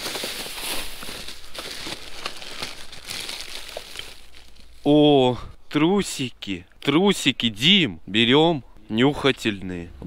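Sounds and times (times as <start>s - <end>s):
plastic bag crinkling: 0.0s - 4.8s.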